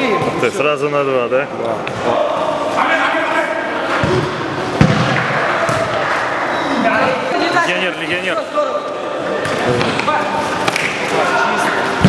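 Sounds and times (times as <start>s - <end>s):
players' voices: 0.0s - 12.0s
ball thudding: 4.0s - 6.0s.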